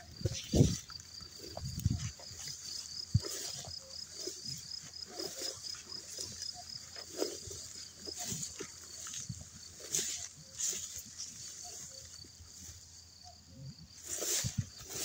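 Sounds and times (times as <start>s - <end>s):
footsteps rustling through tall grass: 0.0s - 15.0s.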